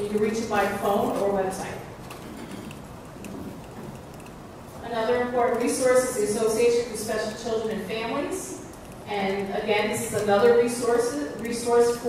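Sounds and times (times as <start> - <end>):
low hiss and rumble: 0.0 - 12.0.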